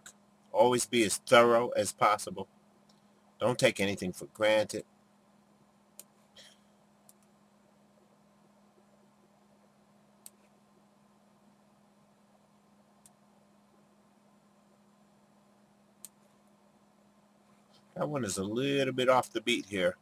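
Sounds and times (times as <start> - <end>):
faint steady hum: 0.0 - 20.0
soft computer mouse clicks: 6.0 - 6.2, 7.0 - 7.3, 10.2 - 10.6, 13.0 - 13.2, 16.0 - 16.4.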